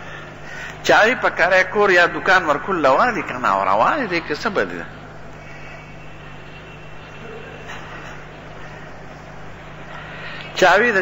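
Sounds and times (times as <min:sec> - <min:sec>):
low even hum: 0:00.0 - 0:11.0.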